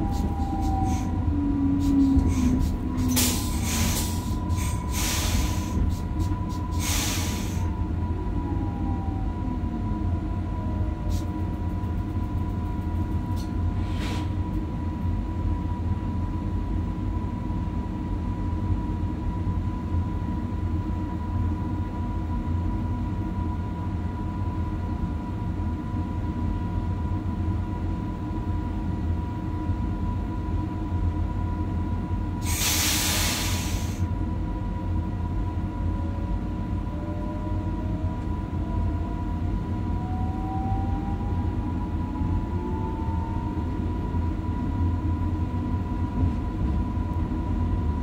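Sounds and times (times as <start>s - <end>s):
train equipment hum and whine: 0.0s - 48.0s.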